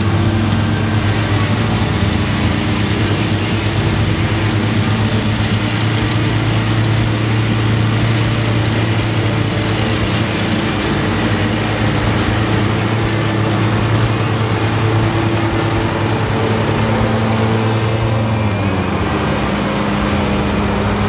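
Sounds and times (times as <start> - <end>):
lawn mower engines droning: 0.0 - 21.0.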